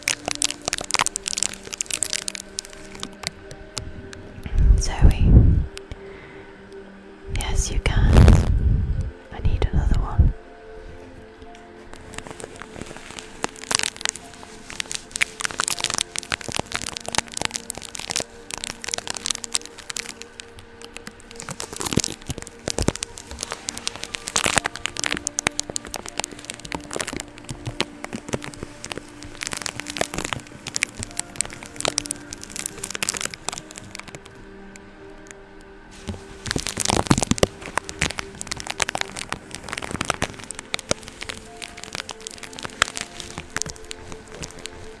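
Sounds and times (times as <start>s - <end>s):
tape crackling on microphone grille: 0.0s - 6.2s, 7.3s - 45.0s.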